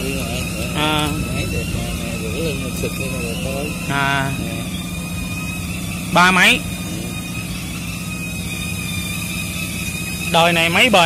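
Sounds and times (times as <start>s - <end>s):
men talking indistinctly: 0.0s - 5.0s, 6.0s - 7.4s, 10.2s - 11.0s
faint high whine: 0.0s - 11.0s
low machine hum: 0.0s - 11.0s.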